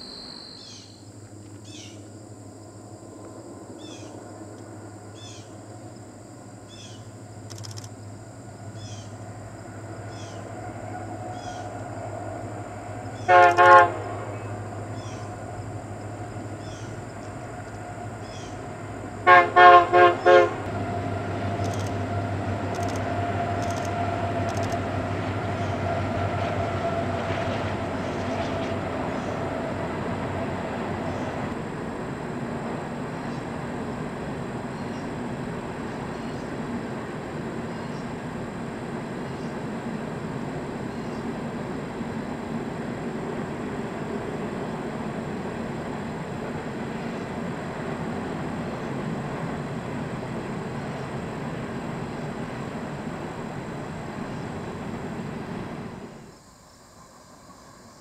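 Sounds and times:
train rumbling across trestle: 0:01.3 - 0:58.0
locomotive horn blasts: 0:13.1 - 0:14.7, 0:19.2 - 0:27.8.

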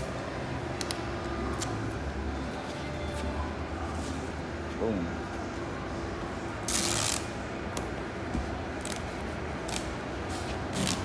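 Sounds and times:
clicks and crackles of duct tape: 0:06.6 - 0:07.9, 0:08.8 - 0:10.0.

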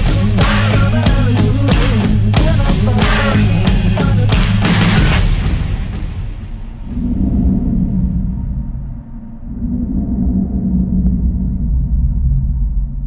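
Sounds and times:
deep low rumbling drone: 0:00.0 - 0:13.0.

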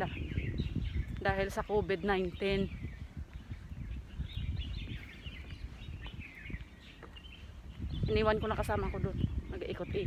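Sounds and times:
small birds chirping: 0:00.0 - 0:10.0
wind rumble on microphone: 0:00.0 - 0:10.0.

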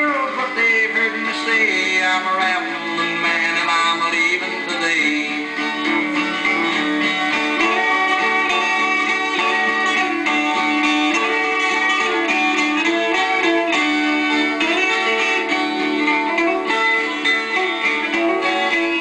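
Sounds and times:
plucked guitar lead: 0:00.0 - 0:19.0
strummed rhythm guitar: 0:00.0 - 0:19.0.

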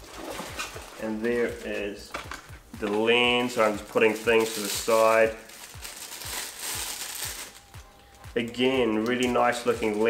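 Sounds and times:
background music with steady beat: 0:00.0 - 0:10.0
plastic packaging crinkling: 0:02.8 - 0:10.0.

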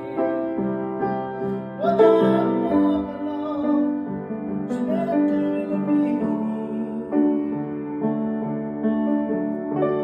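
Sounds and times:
man singing: 0:00.0 - 0:00.7, 0:01.8 - 0:07.6
piano chords: 0:00.0 - 0:10.0.

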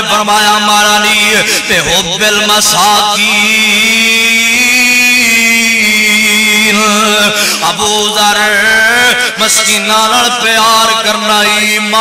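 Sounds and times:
man chanting: 0:00.0 - 0:12.0.

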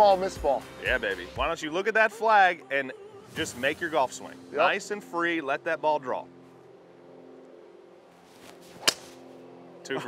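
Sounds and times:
golf club swish: 0:08.3 - 0:09.3
golf club striking ball: 0:08.7 - 0:09.2.

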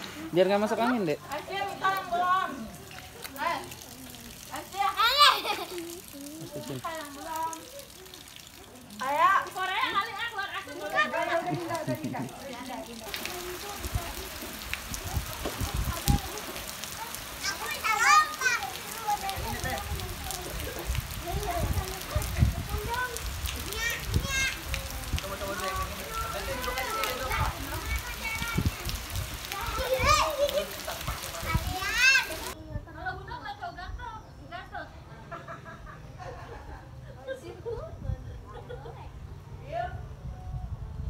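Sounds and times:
rain falling on water and pavement: 0:00.0 - 0:32.6
children shrieking and shouting: 0:04.7 - 0:08.8, 0:14.9 - 0:20.6, 0:21.2 - 0:25.0, 0:25.6 - 0:32.6.

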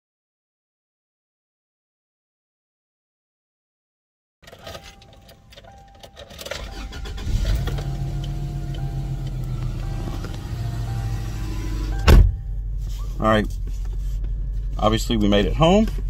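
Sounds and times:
car engine starting and idling: 0:04.4 - 0:16.0
rustling: 0:12.6 - 0:15.2.

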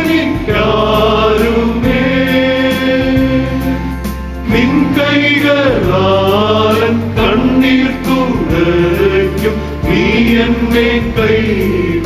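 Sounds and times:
male choir singing a hymn: 0:00.0 - 0:12.0.

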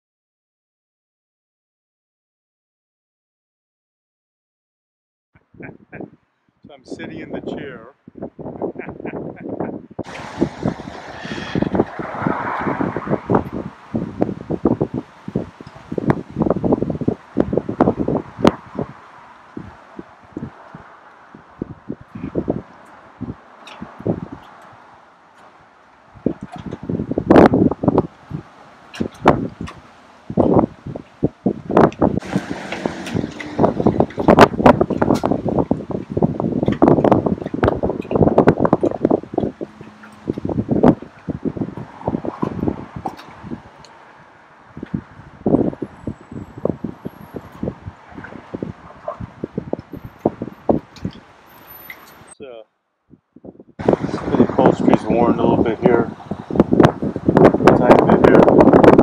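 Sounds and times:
wind buffeting microphone: 0:05.4 - 0:52.4, 0:53.1 - 0:59.0.

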